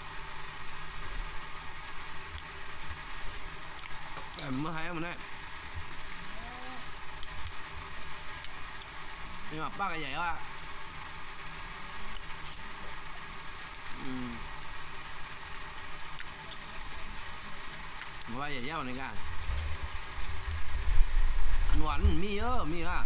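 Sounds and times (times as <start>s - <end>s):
steady background hiss: 0.0s - 23.0s
man speaking: 21.7s - 23.0s.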